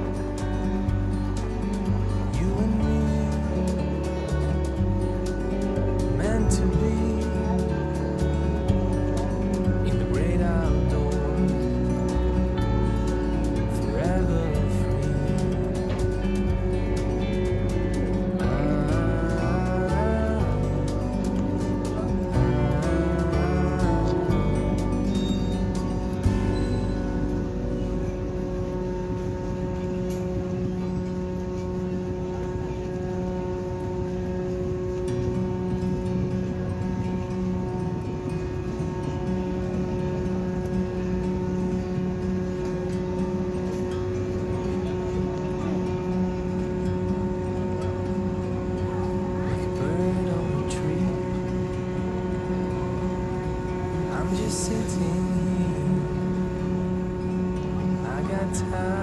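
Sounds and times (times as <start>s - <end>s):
ship engines droning: 0.0s - 59.0s.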